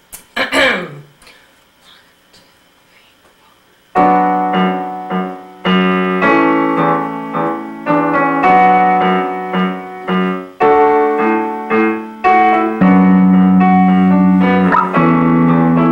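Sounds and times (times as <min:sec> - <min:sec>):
piano chords on keyboard: 0:04.0 - 0:15.9.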